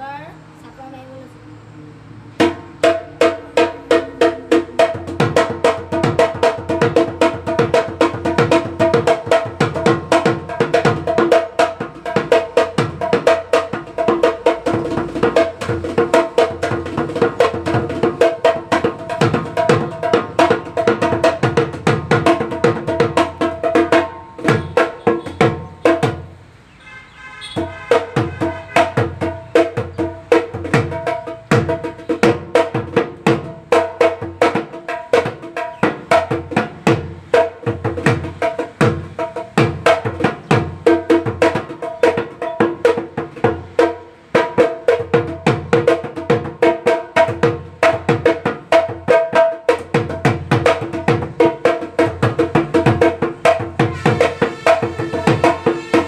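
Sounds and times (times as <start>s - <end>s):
barrel drum fast rhythm: 2.4s - 26.4s, 27.6s - 56.0s.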